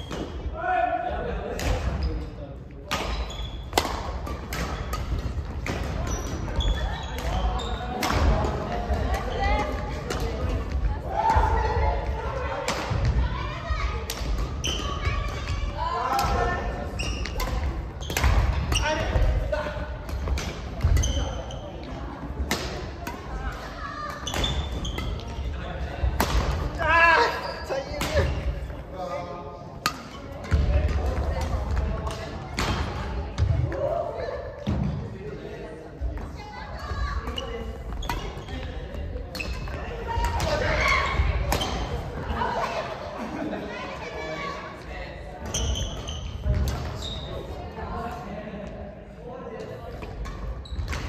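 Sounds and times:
voices in a hall: 0.0s - 51.0s.

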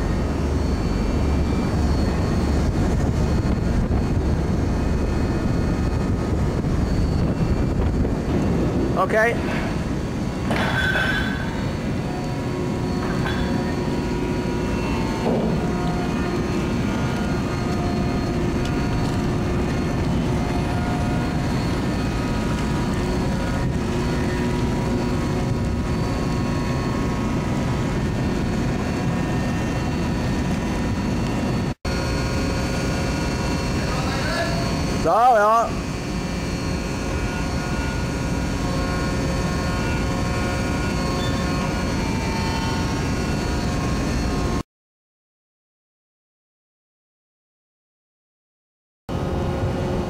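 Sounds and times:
deck machinery rumble: 0.0s - 44.6s
faint whining tones: 0.0s - 44.6s.

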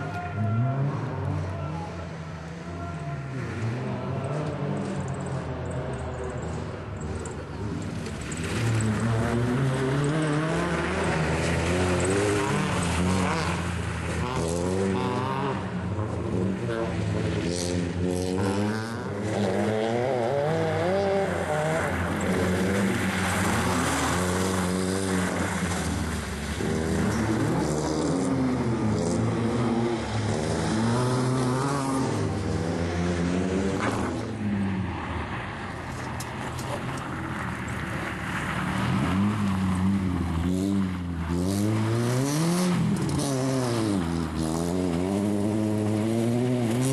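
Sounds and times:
rally car engine revving: 0.0s - 46.9s.

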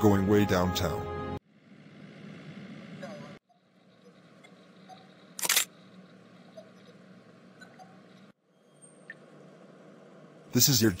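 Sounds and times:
faint room hum: 1.4s - 11.0s
camera shutter click: 5.4s - 5.7s.

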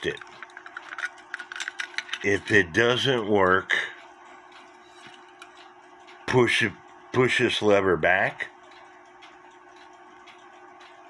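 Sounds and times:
clock clicking and rattling: 0.0s - 11.0s.

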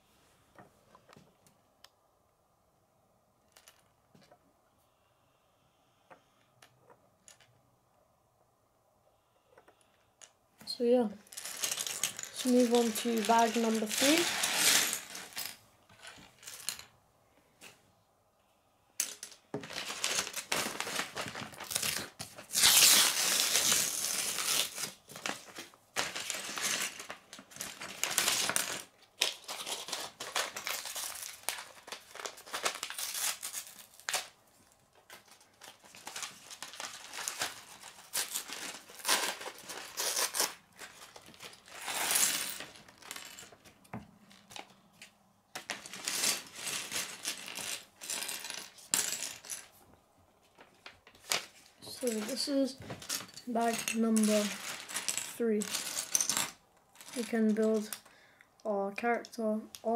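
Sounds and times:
plastic bricks clattering on table: 9.6s - 16.9s, 19.0s - 33.0s, 34.9s - 49.8s, 51.2s - 58.1s
paper bag crinkling and tearing: 19.6s - 34.3s, 35.3s - 43.2s.

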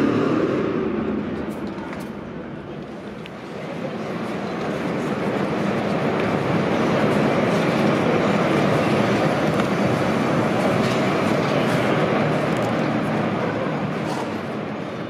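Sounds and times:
echoing rumble in indoor arena: 0.0s - 15.0s.

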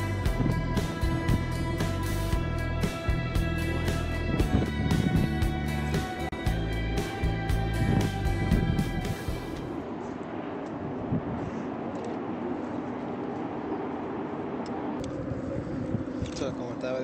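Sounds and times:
background music with held notes: 0.0s - 9.8s
distant road traffic rumble: 0.0s - 17.0s.

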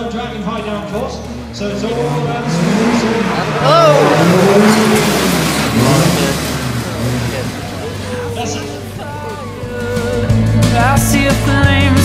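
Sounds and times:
commentator over public address: 0.0s - 9.9s
racing car engine revving: 0.0s - 11.9s.

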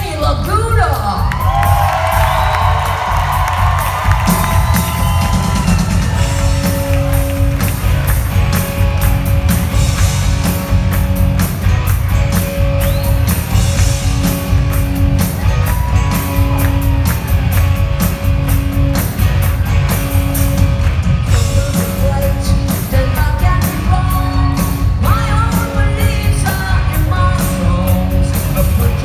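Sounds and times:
live rock band playing: 0.0s - 29.0s
voices whooping: 1.2s - 6.8s.

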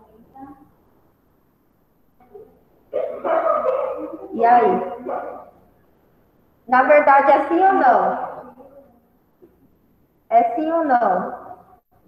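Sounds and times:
dog barking: 2.9s - 5.6s.

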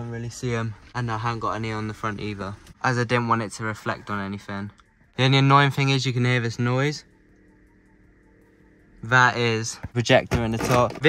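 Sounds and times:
projector humming with pulse: 0.0s - 11.0s.

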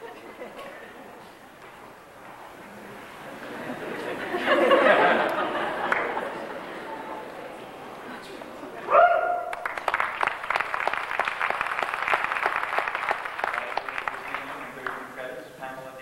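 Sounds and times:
audience applause: 3.2s - 15.2s.

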